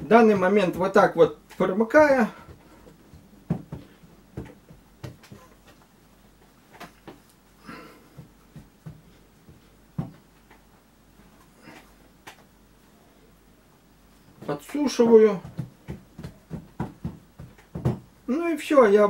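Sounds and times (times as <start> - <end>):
hands patting cloth: 8.1 - 10.5, 14.4 - 18.1.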